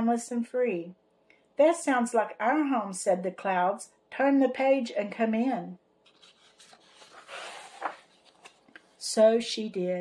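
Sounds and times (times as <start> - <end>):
book page turning: 6.0 - 9.0.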